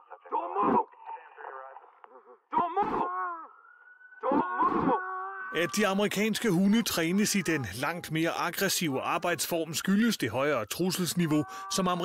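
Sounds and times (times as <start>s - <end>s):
loud shout: 2.5s - 3.6s, 4.2s - 5.7s.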